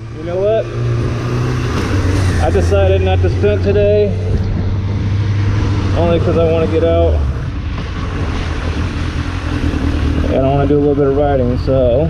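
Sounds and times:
motorcycle engine running at low revs: 0.0s - 12.0s.

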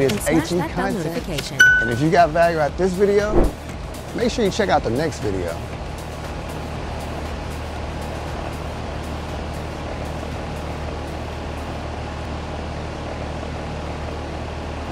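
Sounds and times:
faint background music with beat: 0.0s - 11.2s.

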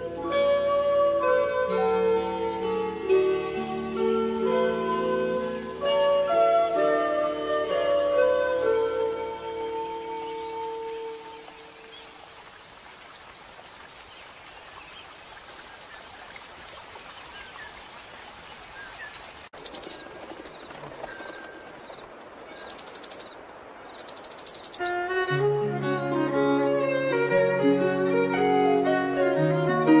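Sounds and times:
plucked strings and fiddle: 0.0s - 11.5s, 24.9s - 30.0s
nature ambience hiss: 0.0s - 30.0s.

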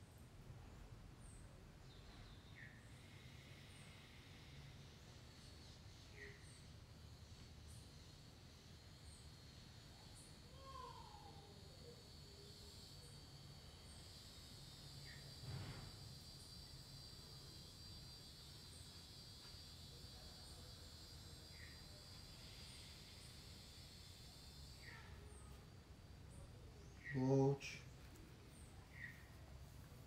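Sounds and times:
insect drone: 0.2s - 30.0s.

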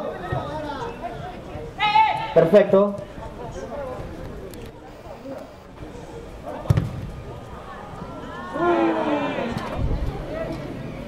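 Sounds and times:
football kicked thump: 6.7s - 7.1s.

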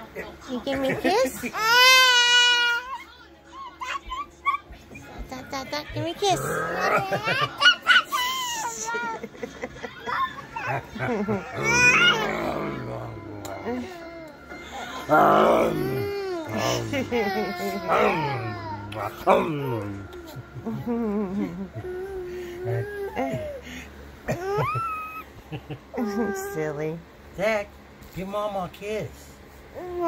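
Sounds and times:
toddler grunting: 6.2s - 7.2s, 11.5s - 14.2s, 15.1s - 19.8s
toddler laughing: 6.4s - 12.6s, 15.6s - 18.7s, 24.3s - 26.4s
man humming: 11.6s - 14.1s, 15.0s - 23.2s.

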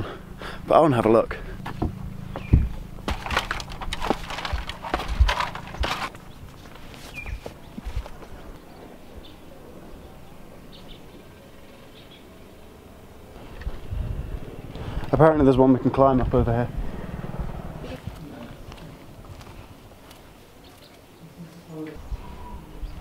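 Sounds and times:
handheld camera knocks and bumps: 1.6s - 8.3s.

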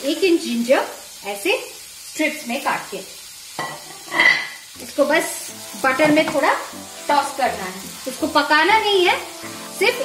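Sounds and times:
low sizzle in pan: 0.0s - 10.0s.

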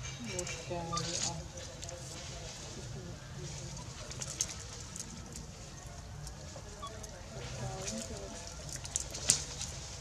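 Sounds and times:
bird calling softly: 0.8s - 1.4s, 6.5s - 7.1s.

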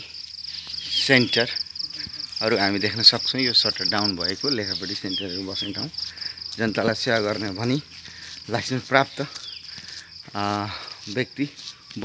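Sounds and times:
high-pitched insect trill: 0.0s - 12.0s
man speaking: 0.8s - 9.4s, 10.3s - 12.0s.

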